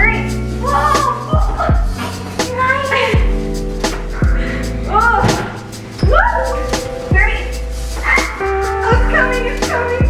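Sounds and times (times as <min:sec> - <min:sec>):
woman calling out: 0:00.0 - 0:01.8, 0:02.4 - 0:03.3, 0:04.9 - 0:10.0
background music with held tones: 0:00.0 - 0:10.0
deep downward-sliding bass hits: 0:03.3 - 0:07.8.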